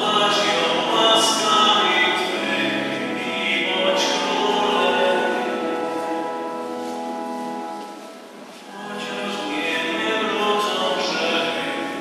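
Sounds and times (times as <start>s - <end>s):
choir singing a hymn: 8.7s - 12.0s.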